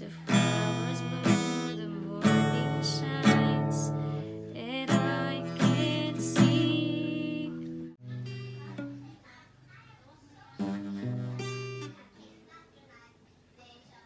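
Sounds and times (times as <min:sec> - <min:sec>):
woman singing: 0:00.0 - 0:07.7
acoustic guitar strumming chords: 0:00.0 - 0:09.1, 0:10.6 - 0:12.0.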